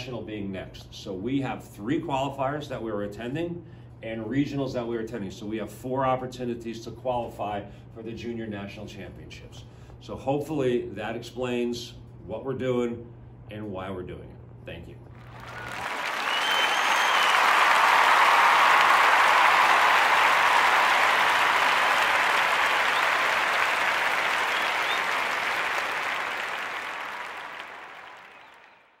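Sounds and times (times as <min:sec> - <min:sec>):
crowd applauding: 0:15.2 - 0:29.0
brief whistle: 0:15.6 - 0:17.5, 0:24.4 - 0:25.3.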